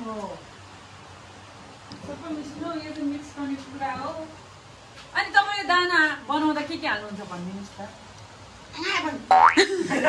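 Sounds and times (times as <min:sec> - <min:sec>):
laughter: 0:09.6 - 0:10.0.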